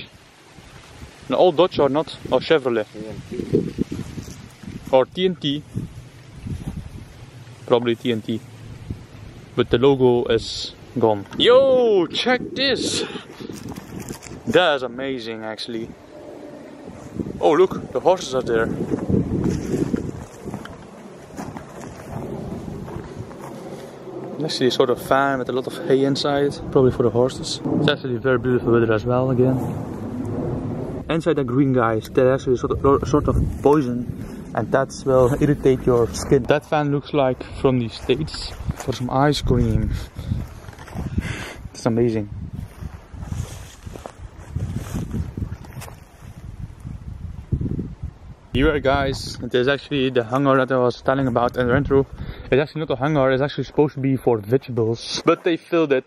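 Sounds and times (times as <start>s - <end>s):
wind on microphone: 0.0s - 50.2s, 51.0s - 53.4s.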